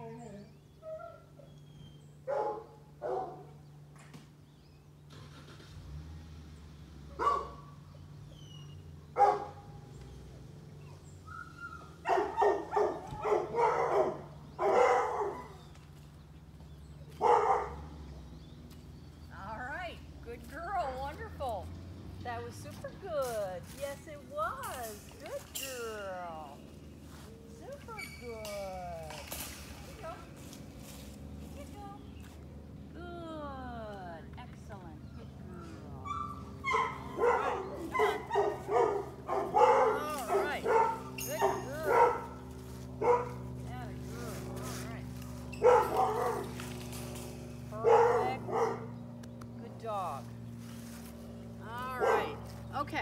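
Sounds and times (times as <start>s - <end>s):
dog barking: 2.3s - 3.6s, 7.2s - 7.8s, 9.2s - 9.8s, 11.4s - 15.7s, 17.2s - 17.9s, 35.6s - 42.4s, 43.0s - 43.4s, 45.6s - 46.6s, 47.8s - 49.0s, 52.0s - 52.4s.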